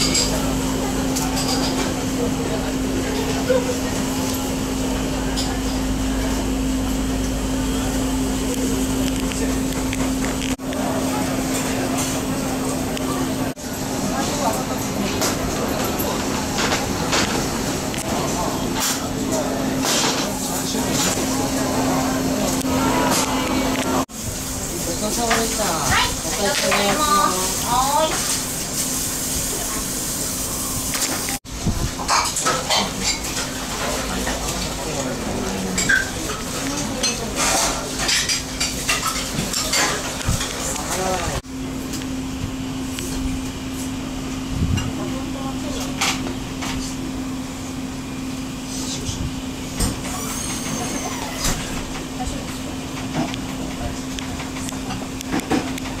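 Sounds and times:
dishes and utensils clinking: 0:00.0 - 0:02.1, 0:32.0 - 0:34.8, 0:35.7 - 0:41.2.

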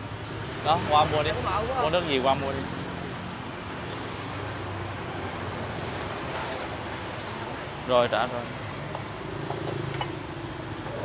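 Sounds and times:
motorbikes and cars passing: 0:00.0 - 0:11.0.

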